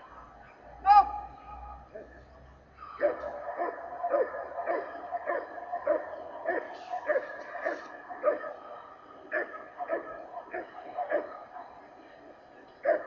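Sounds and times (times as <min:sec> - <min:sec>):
dog barking: 0:01.9 - 0:13.0.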